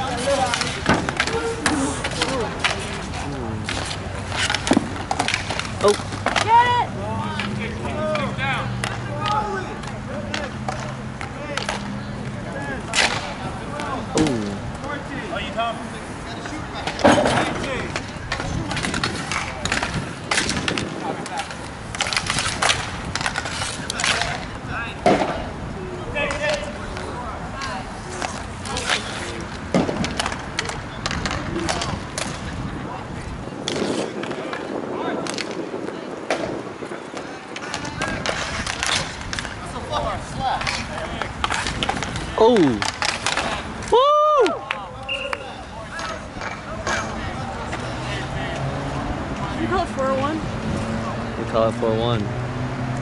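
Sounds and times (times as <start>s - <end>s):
hockey sticks and puck clacking: 0.0s - 48.7s
skate wheels rolling on rink: 0.0s - 53.0s.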